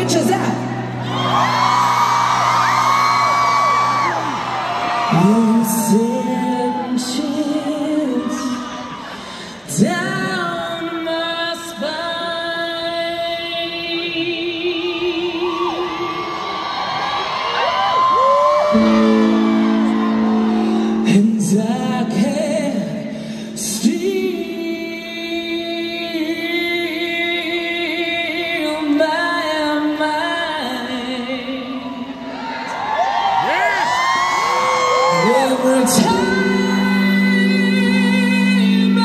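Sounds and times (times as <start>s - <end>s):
crowd screaming and whooping: 0.7s - 9.5s, 14.8s - 22.9s, 30.7s - 37.7s
band holding low note: 18.8s - 24.1s.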